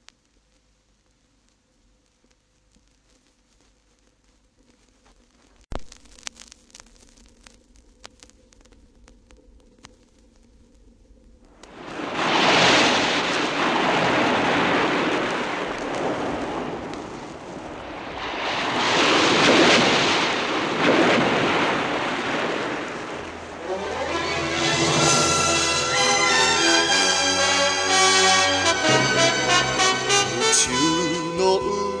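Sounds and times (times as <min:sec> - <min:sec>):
vinyl crackle and clicks: 0:00.0 - 0:19.0
loud rushing noise: 0:11.7 - 0:30.8.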